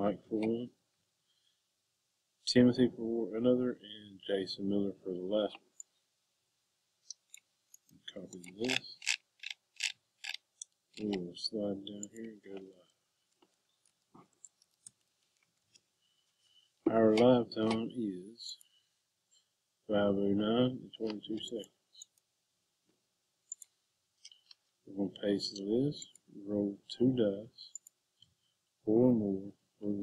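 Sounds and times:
computer mouse clicking: 7.1s - 11.1s, 23.5s - 24.6s.

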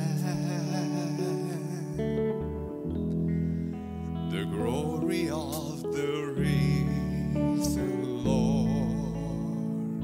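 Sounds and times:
man singing: 0.0s - 2.5s, 4.2s - 10.0s
sustained guitar chords: 0.0s - 10.0s
steady bass: 2.0s - 10.0s.

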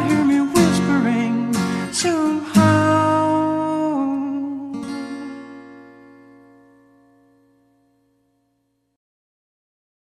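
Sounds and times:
acoustic guitar strumming: 0.0s - 8.6s.

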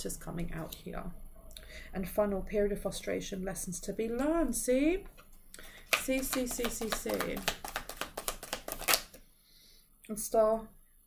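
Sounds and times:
cards being shuffled: 5.2s - 9.2s.

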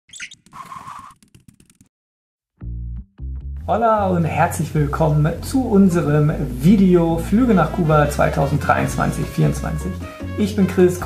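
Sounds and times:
high bird-like chirp: 0.1s - 1.1s.

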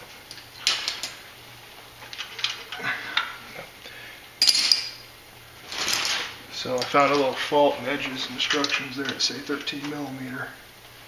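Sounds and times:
metal hand tools clinking: 4.4s - 5.0s.

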